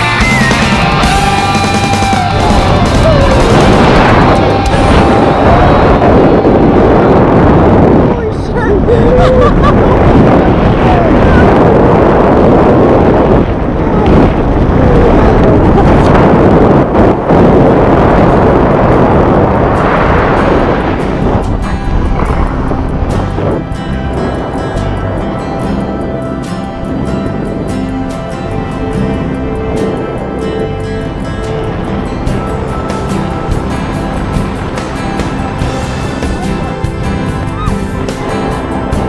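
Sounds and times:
background music: 0.0 - 8.5, 19.4 - 39.0
wind rushing on microphone: 0.0 - 39.0.

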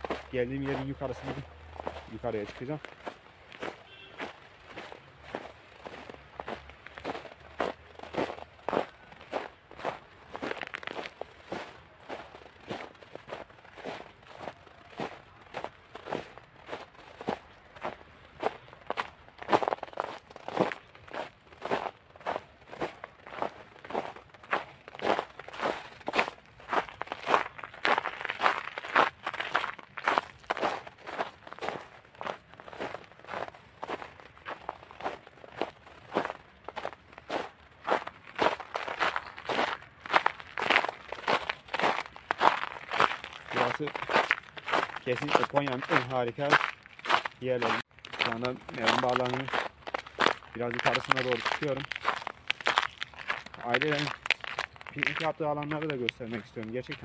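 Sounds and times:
footsteps on snow: 0.0 - 57.0.

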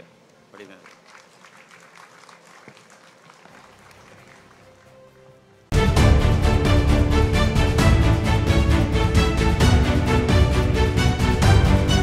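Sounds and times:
audience applauding faintly: 0.6 - 5.4.

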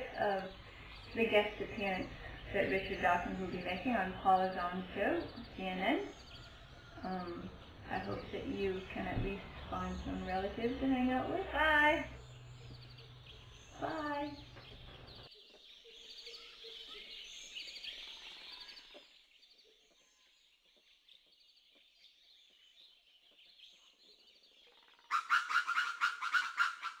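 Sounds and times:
faint bird chirping: 0.0 - 27.0
rapid animal calls: 25.0 - 27.0.

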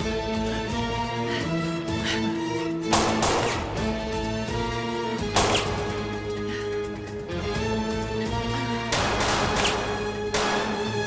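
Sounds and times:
dramatic background music: 0.0 - 11.0
gunshots echoing: 2.9 - 4.0, 5.3 - 6.1, 8.9 - 11.0.

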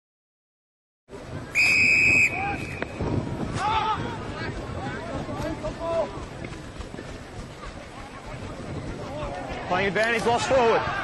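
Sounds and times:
field noise: 1.1 - 11.0
referee's whistle blast: 1.5 - 3.0.

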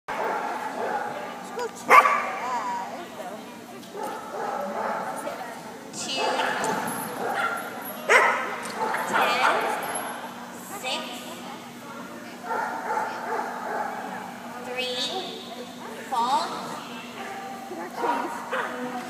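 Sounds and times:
people's voices: 0.1 - 19.0
dog barking and yipping: 1.9 - 2.3.

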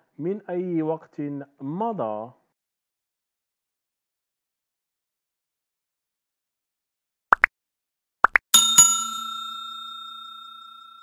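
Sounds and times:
bell chime: 8.6 - 11.0.

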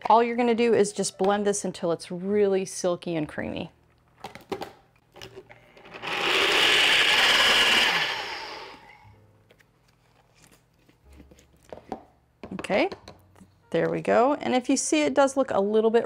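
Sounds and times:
blender running: 5.8 - 9.0.

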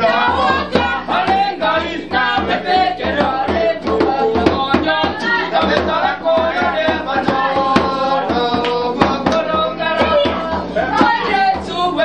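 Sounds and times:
acoustic guitar: 0.0 - 12.0
group of voices singing: 0.0 - 12.0
steady struck beat: 0.0 - 12.0.

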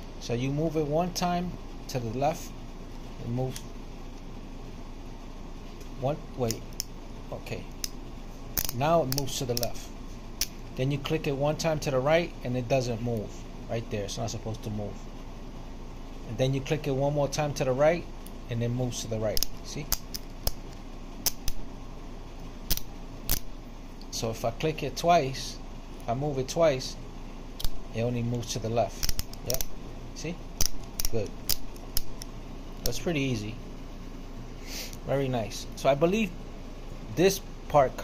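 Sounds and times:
low room hiss: 0.0 - 38.0
ratchet clicking: 30.6 - 33.0.

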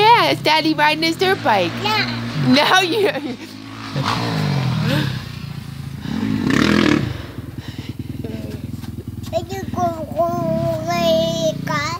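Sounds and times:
dirt bike engine revving: 0.0 - 11.9.

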